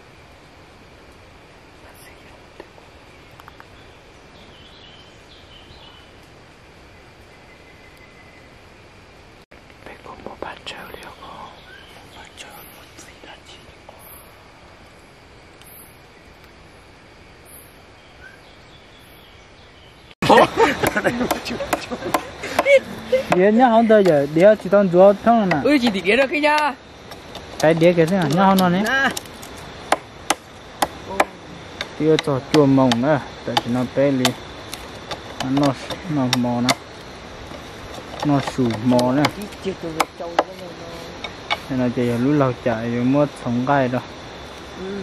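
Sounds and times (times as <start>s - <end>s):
background hiss: 0.0s - 45.0s
person whispering: 1.8s - 2.6s, 9.8s - 14.1s
sharp chopping knocks: 29.9s - 34.4s, 35.0s - 36.8s.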